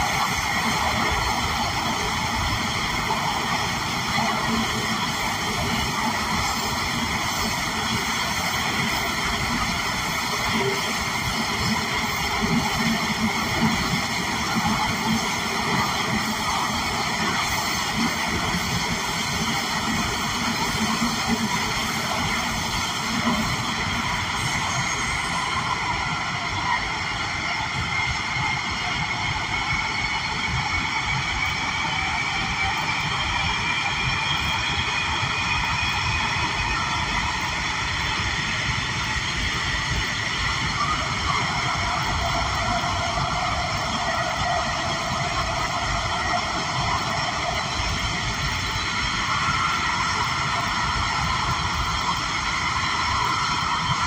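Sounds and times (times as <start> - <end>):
steel wheels rumbling on rail: 0.0 - 54.0.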